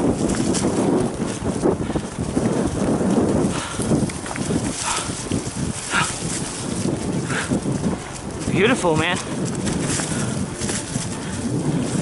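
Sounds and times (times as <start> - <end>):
bike and camera rattling: 0.0 - 12.0
bike tyres over dry leaves: 0.0 - 12.0.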